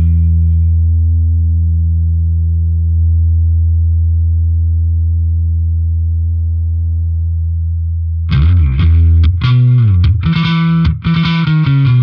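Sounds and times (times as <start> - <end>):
low electric bass note: 0.0 - 11.1.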